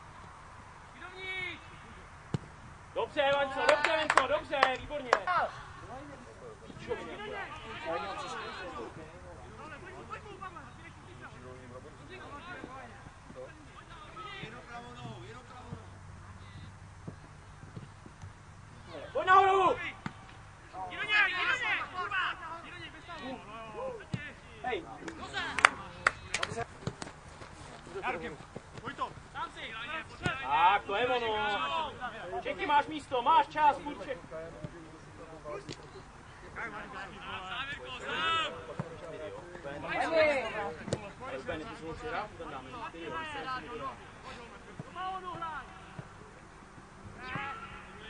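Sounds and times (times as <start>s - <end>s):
voices calling out: 18.7s - 48.0s
loud shouting: 19.0s - 20.0s, 20.7s - 24.1s, 29.4s - 32.1s, 37.2s - 38.7s, 47.2s - 48.0s.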